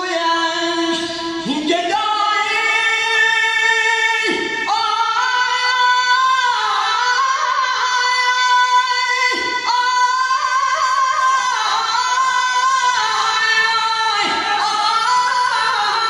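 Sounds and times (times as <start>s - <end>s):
person singing a devotional chant: 0.0s - 16.0s.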